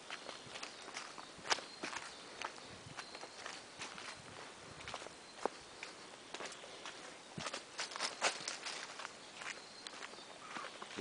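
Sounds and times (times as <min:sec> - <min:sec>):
footsteps on dry leaves and twigs: 0:00.0 - 0:11.0.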